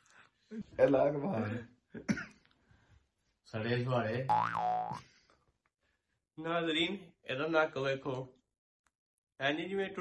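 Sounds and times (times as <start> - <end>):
cartoon boing sound effect: 4.3 - 5.0.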